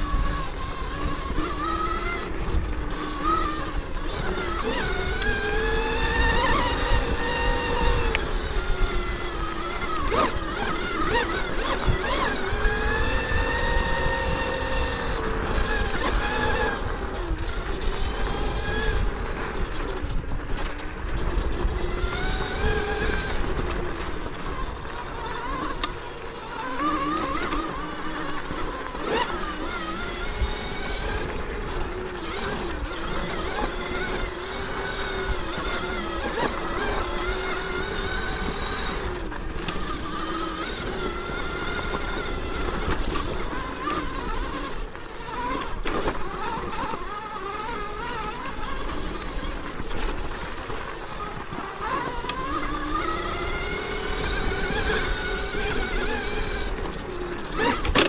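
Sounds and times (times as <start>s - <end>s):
electric motorbike motor whining: 0.0s - 58.0s.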